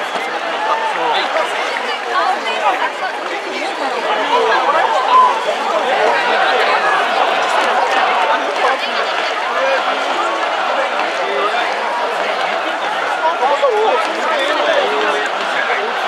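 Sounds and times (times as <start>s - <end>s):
crowd voices chattering: 0.0s - 16.0s.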